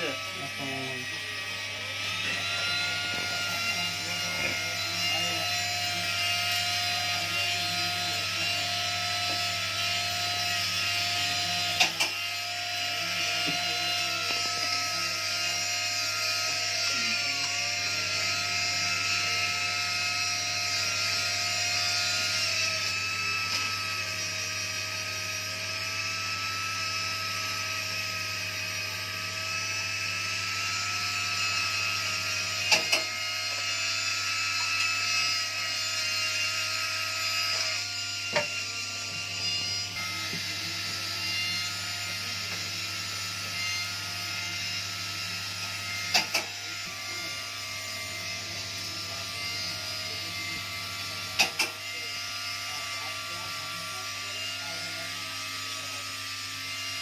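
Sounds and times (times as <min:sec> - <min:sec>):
rotary tool whine grinding metal: 0:00.0 - 0:57.0.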